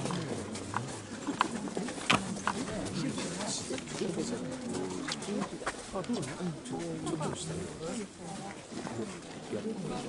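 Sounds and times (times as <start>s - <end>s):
murmur of many voices: 0.0s - 10.0s.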